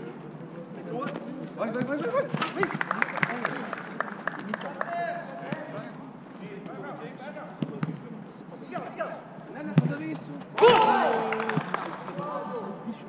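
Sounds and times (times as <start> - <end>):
players calling: 10.4 - 12.8.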